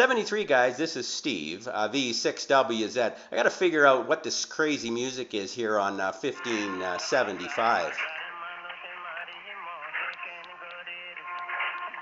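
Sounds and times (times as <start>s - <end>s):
thin am radio music: 6.4s - 12.0s.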